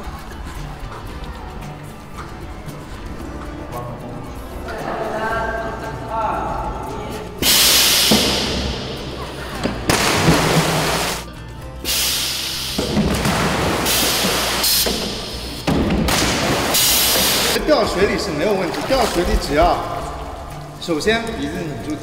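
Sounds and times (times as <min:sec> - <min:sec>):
music: 0:00.0 - 0:22.0
splashes into pool: 0:09.9 - 0:11.2, 0:16.0 - 0:20.2.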